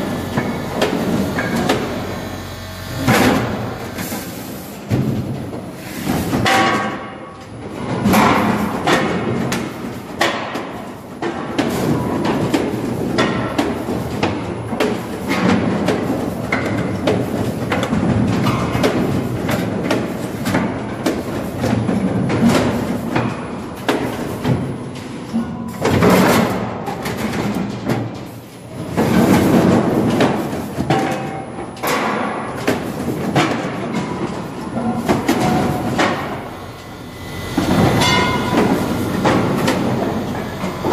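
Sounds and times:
machinery rattling and knocking: 29.0 - 40.9
machinery low drone: 35.4 - 40.9.

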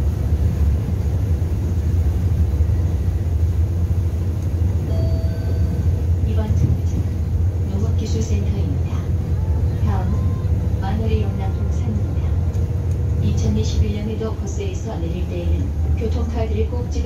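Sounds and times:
bus engine and road rumble: 0.0 - 17.0
voices: 6.2 - 17.0.

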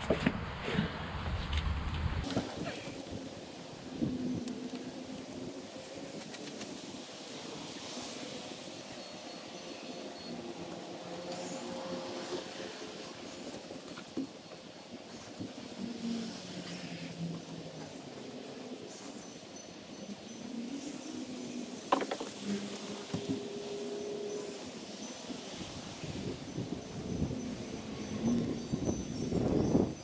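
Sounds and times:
distant engines humming: 1.6 - 29.8.

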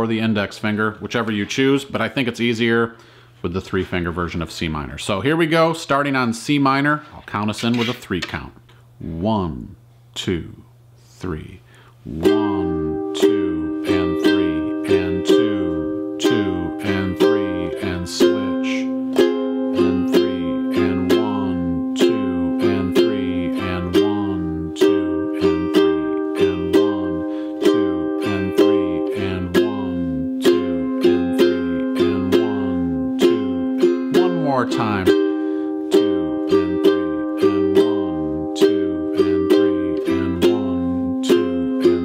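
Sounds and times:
ukulele strummed slowly: 12.2 - 42.0.

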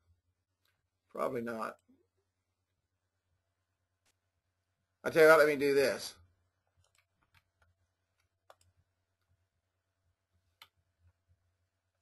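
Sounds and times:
faint computer clicks: 6.7 - 8.8.

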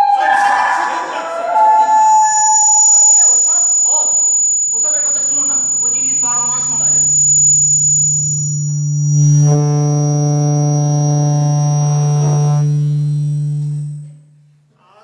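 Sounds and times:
man's voice: 0.0 - 2.0, 4.8 - 7.0, 14.8 - 15.0
loud electronic drone: 0.0 - 14.8.

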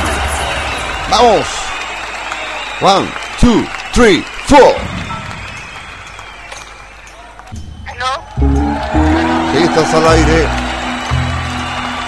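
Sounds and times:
deep bass: 8.4 - 11.6.

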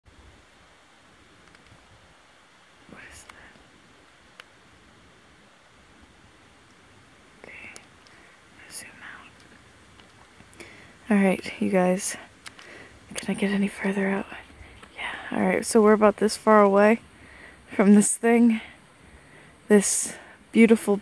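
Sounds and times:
steady low hiss: 0.1 - 21.0
person whispering: 2.9 - 3.6, 7.4 - 7.9, 8.6 - 9.4, 13.1 - 17.0.

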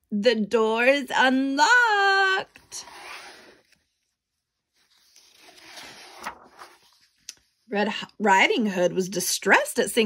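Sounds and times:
paper page rustling: 4.7 - 7.3.

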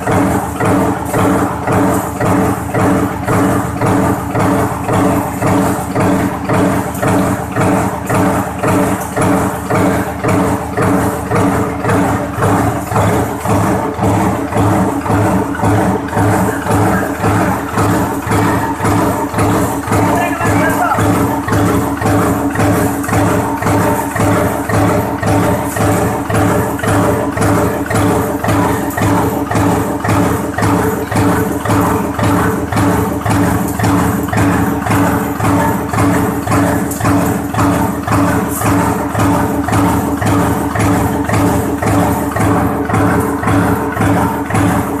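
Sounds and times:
power press clatter: 0.0 - 45.0.

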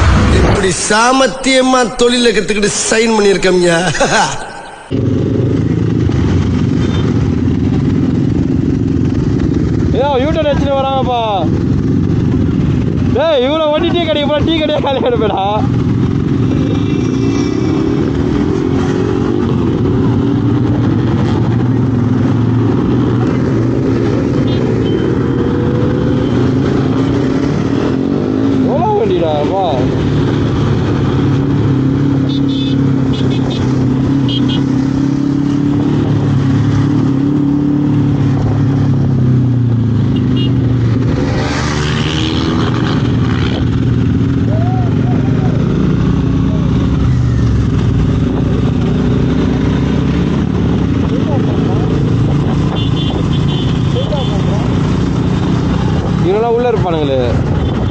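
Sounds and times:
wind and road rush: 0.0 - 57.9
motorcycle engine running: 4.9 - 28.8, 29.7 - 56.3, 57.3 - 57.9.

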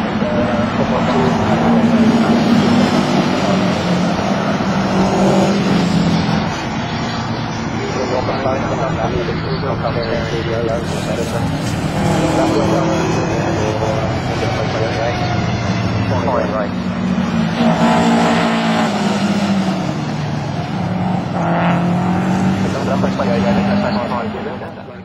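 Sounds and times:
racing cars passing: 0.0 - 25.0.

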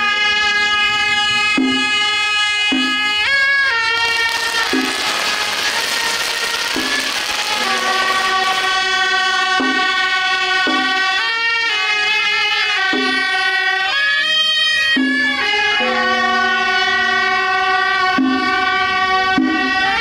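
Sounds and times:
double-reed horn melody: 0.0 - 20.0
noisy wash: 4.2 - 9.1.

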